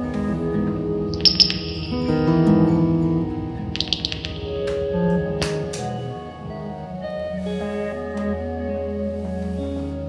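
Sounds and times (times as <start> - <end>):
acoustic guitar: 0.0 - 10.0
electric guitar: 0.0 - 10.0
high bright ringing tone: 1.2 - 6.6.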